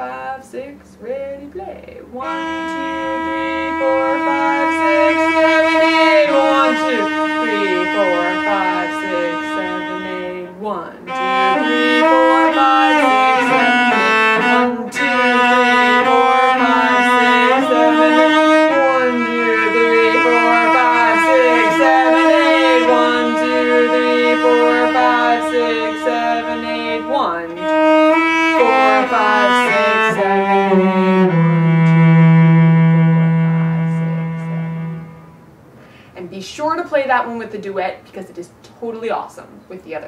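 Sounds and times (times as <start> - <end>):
cello playing tango melody: 2.1 - 35.5.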